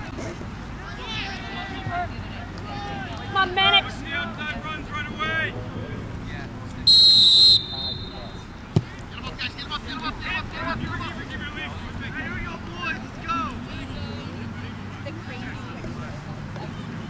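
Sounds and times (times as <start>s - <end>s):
referee's whistle blast: 6.9s - 8.4s
soccer ball kicked: 8.7s - 9.0s.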